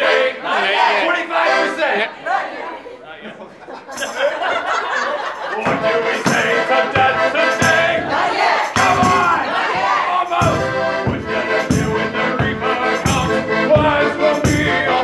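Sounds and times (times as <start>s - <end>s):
person singing: 5.6s - 8.2s, 10.2s - 15.0s
steady beat: 5.6s - 15.0s
audience shouting and singing along: 6.8s - 10.6s.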